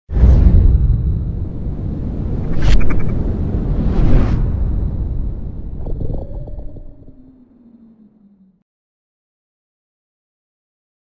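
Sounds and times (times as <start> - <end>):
deep rumble: 0.1 - 8.6
sharp whooshes: 2.3 - 6.1
low ringing tone: 4.6 - 8.6.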